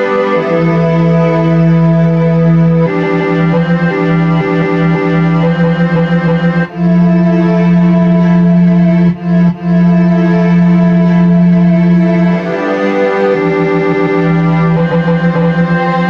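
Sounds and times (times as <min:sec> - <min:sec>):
held synthesizer notes: 0:00.0 - 0:16.0.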